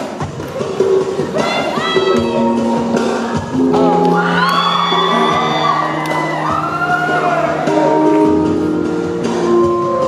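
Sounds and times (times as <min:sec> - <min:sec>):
audience whooping: 0:04.0 - 0:08.2.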